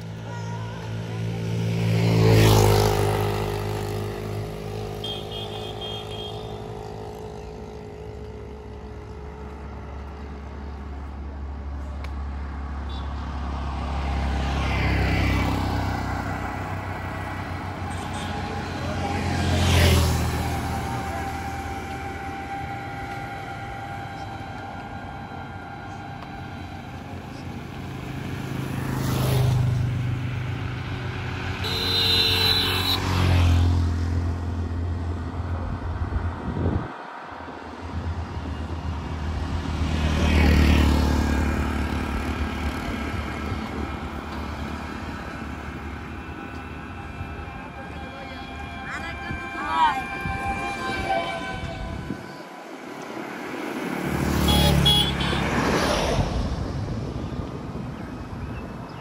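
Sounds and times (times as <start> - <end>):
auto-rickshaw passing close: 0.0 - 59.0
low traffic rumble: 0.0 - 59.0
vehicles passing: 0.0 - 59.0.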